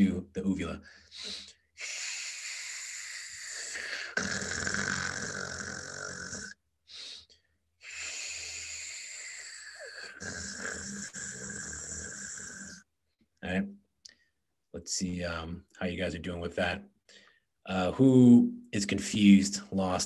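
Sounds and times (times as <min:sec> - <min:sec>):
raspy throat sound: 0:01.2 - 0:07.2, 0:07.8 - 0:12.9.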